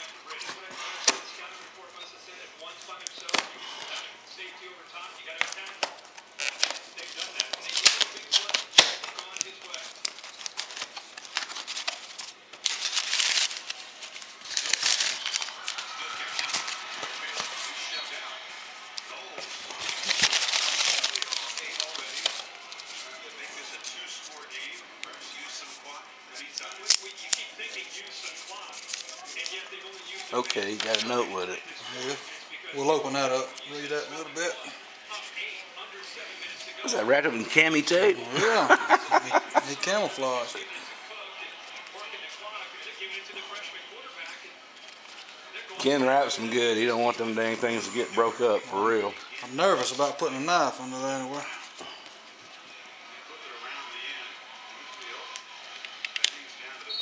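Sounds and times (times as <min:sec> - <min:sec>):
paper and cardboard rustling: 0:05.3 - 0:31.5
knife slitting paper wrapping: 0:09.8 - 0:18.1, 0:19.4 - 0:23.7.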